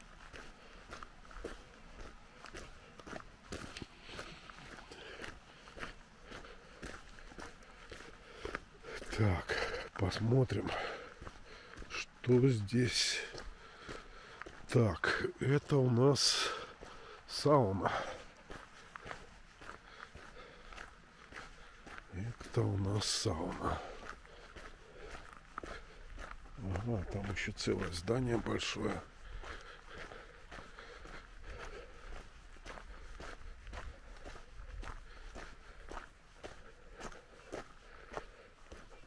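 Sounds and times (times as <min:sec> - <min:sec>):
footsteps on fallen leaves: 0:00.0 - 0:39.0.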